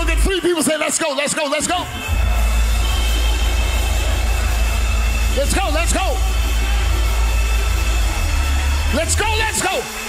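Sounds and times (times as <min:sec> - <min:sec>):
heavy steady bass: 0:01.8 - 0:10.0.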